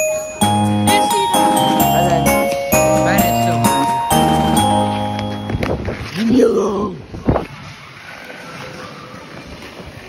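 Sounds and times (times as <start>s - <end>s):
skate blades gliding on ice: 7.2s - 10.0s.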